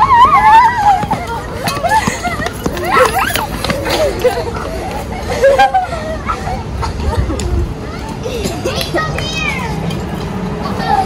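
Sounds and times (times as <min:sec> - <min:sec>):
girls squealing: 0:00.0 - 0:06.9
girls chattering: 0:00.0 - 0:11.0.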